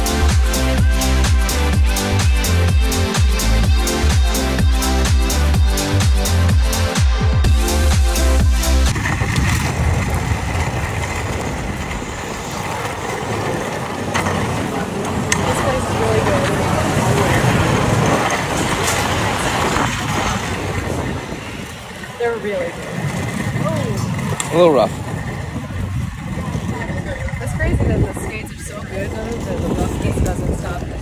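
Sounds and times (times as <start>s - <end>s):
dance music: 0.0s - 8.9s
skate wheels rolling on pavement: 7.5s - 31.0s
faint voices: 11.4s - 31.0s.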